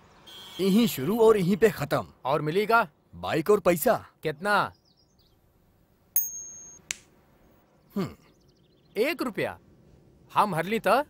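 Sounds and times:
metallic coin ting: 6.2 - 7.0.

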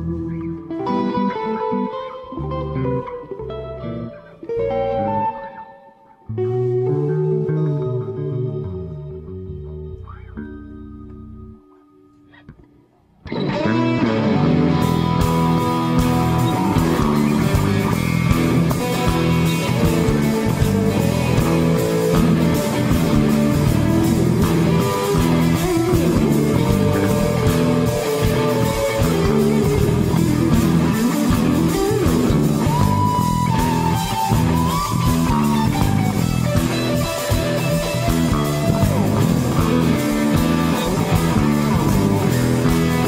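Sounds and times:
bass guitar: 0.0 - 43.0
electric guitars playing riff: 0.0 - 43.0
lead guitar bending note: 0.0 - 43.0
drums: 13.3 - 43.0.

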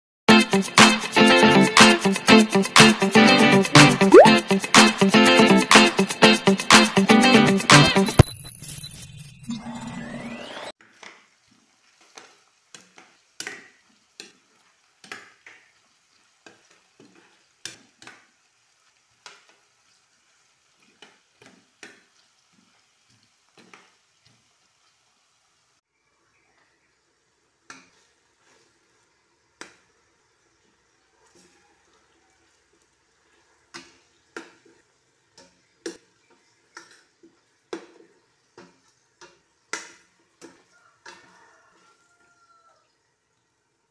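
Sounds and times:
faint sizzle of frying: 10.8 - 43.9.

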